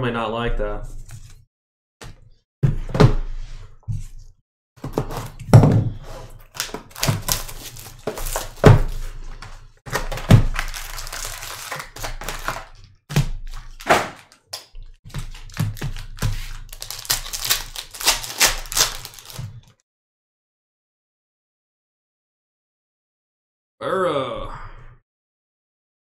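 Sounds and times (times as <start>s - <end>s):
card packs tearing open: 6.4s - 9.1s, 9.9s - 19.7s
foil wrappers crinkling: 6.4s - 9.1s, 9.9s - 12.8s, 13.4s - 19.7s.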